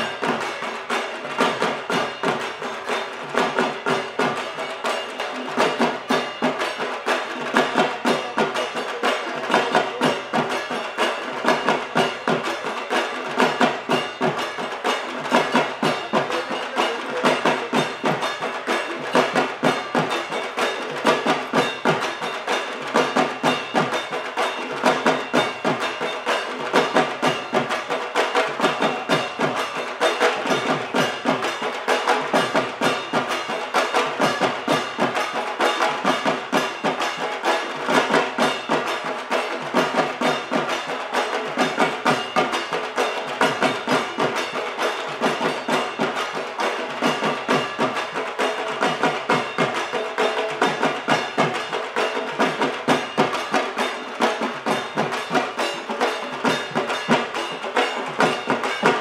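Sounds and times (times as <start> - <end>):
barrel drums beaten with sticks: 0.0 - 59.0.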